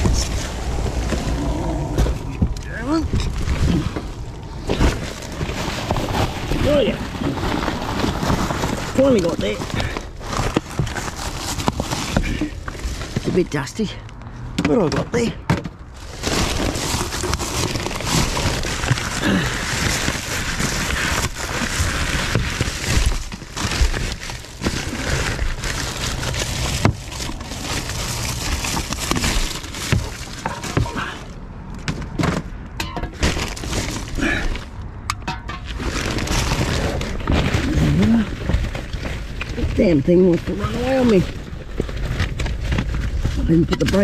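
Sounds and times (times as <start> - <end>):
plastic bags crinkling: 0.0 - 14.0, 15.2 - 31.4, 33.1 - 44.0
rummaging through rubbish: 0.0 - 14.0, 14.6 - 44.0.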